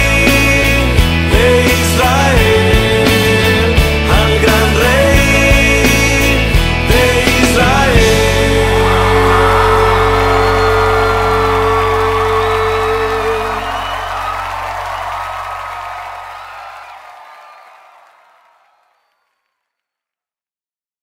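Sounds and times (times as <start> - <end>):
bass: 0.0 - 17.0.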